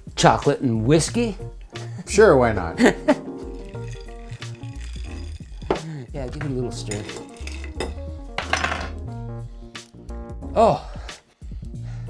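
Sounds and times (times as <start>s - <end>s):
background music: 0.0s - 12.0s
ice and spoon clinking in glass: 3.4s - 9.0s.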